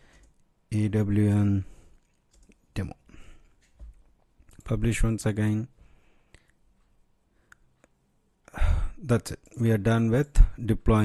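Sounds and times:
man speaking: 0:00.7 - 0:01.7, 0:02.8 - 0:03.0, 0:04.6 - 0:05.7, 0:08.6 - 0:11.0
faint clicks: 0:01.9 - 0:02.7.

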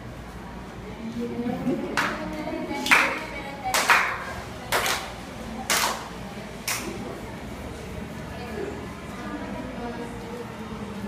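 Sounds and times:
group clapping on a steady beat: 0:01.9 - 0:07.0.

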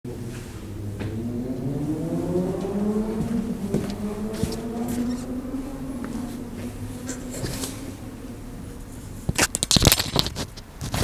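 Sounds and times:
motor hum: 0:00.1 - 0:09.4.

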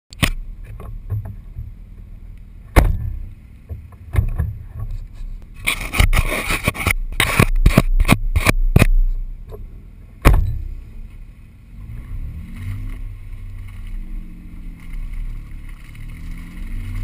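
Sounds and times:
low rumble: 0:00.2 - 0:17.0
loud scraping: 0:04.9 - 0:08.9.

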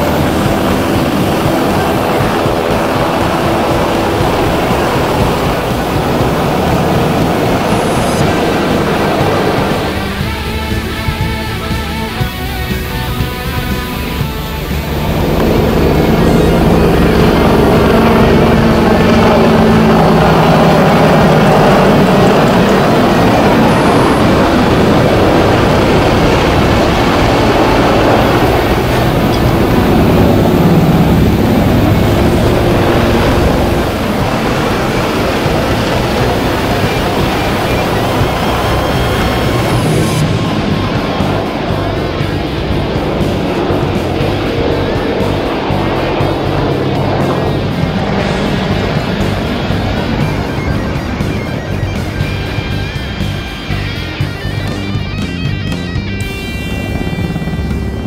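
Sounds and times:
helicopter rotor beating: 0:00.0 - 0:58.0
rock background music: 0:00.0 - 0:58.0
turbine noise: 0:00.0 - 0:58.0.

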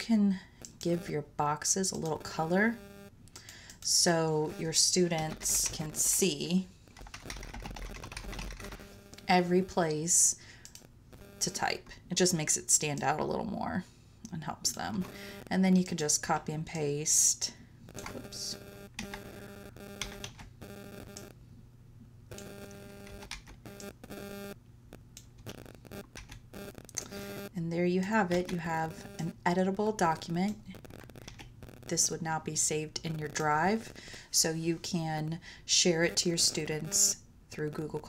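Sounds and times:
buzzing tone: 0:00.0 - 0:03.2, 0:03.9 - 0:06.5, 0:07.1 - 0:11.9, 0:15.0 - 0:16.5, 0:17.8 - 0:21.4, 0:22.3 - 0:34.1, 0:35.8 - 0:37.2
low electrical hum: 0:00.0 - 0:38.0
keyboard typing: 0:01.9 - 0:02.7, 0:04.6 - 0:09.9, 0:17.9 - 0:21.3, 0:22.3 - 0:24.6, 0:25.2 - 0:27.5, 0:28.1 - 0:29.4, 0:30.0 - 0:32.1.

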